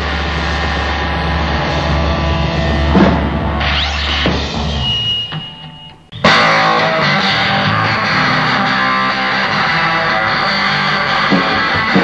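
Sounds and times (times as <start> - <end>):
amplifier hum: 0.0 - 11.8
distorted guitar and bass ringing: 0.0 - 12.0.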